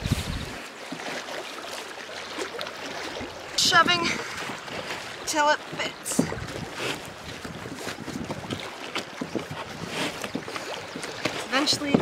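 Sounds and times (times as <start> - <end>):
wind on microphone: 0.0 - 0.6, 5.9 - 12.0.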